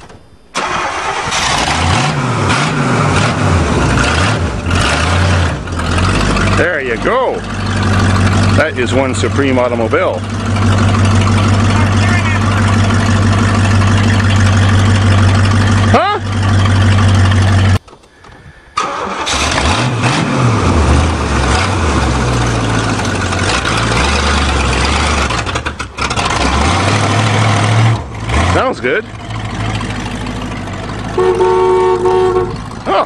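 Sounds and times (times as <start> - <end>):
car engine idling and revving: 0.6 - 17.8, 18.9 - 33.0.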